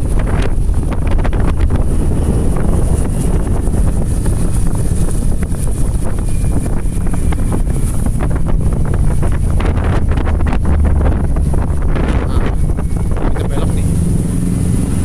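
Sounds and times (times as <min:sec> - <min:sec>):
rain: 0:00.0 - 0:13.0
vehicle driving on wet road: 0:00.0 - 0:15.0
wind buffeting microphone: 0:00.0 - 0:15.0.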